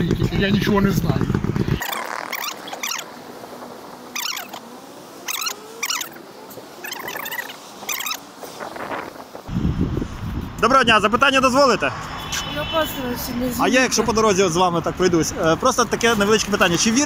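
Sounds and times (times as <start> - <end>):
faint street hum: 0.0 - 17.0
short high-pitched squeaks: 1.7 - 3.1, 4.1 - 6.2, 6.8 - 8.2.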